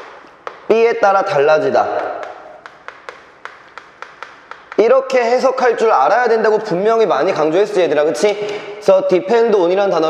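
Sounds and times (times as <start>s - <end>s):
chalk tapping on a chalkboard: 0.0s - 5.9s.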